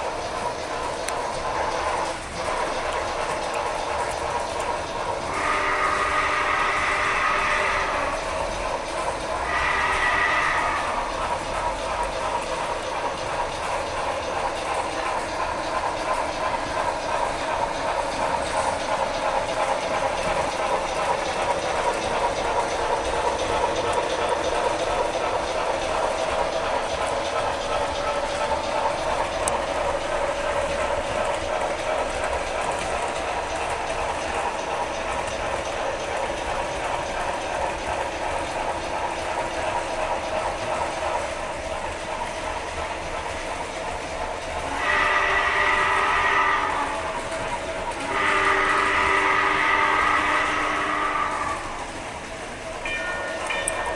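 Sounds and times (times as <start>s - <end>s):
model train motor hum: 0.0s - 53.9s
small wheels clicking over track: 0.0s - 53.9s
multi-pitch horn tone: 48.1s - 51.5s.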